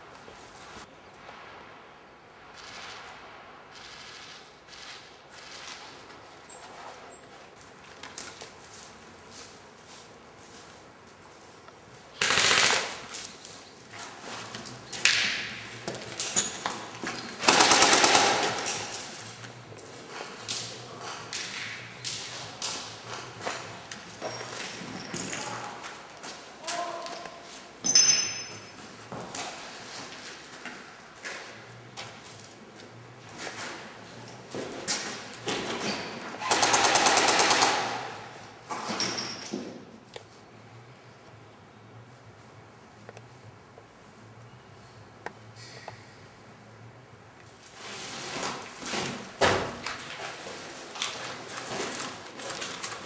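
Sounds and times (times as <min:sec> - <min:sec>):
airsoft gun rapid fire: 0:12.2 - 0:13.1, 0:17.4 - 0:18.7, 0:36.4 - 0:38.2.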